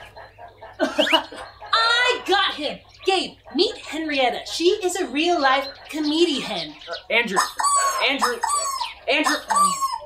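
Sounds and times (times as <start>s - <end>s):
chicken squawk: 0.0s - 2.4s, 5.3s - 10.0s
chicken clucking: 0.0s - 10.0s.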